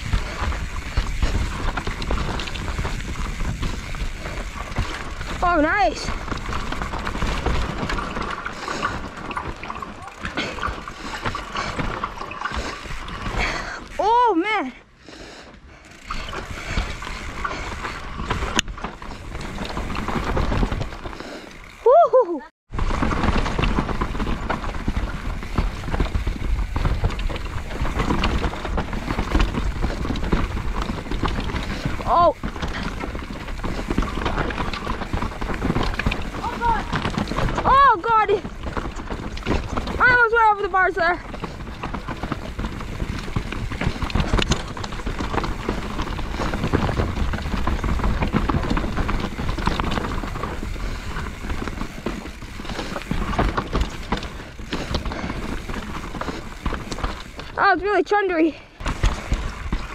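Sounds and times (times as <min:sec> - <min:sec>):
bike tyres and rattling: 0:00.0 - 0:59.9.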